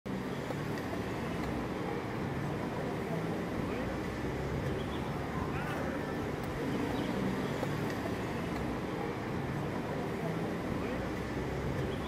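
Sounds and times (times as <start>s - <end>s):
low rumble of road traffic: 0.1s - 12.0s.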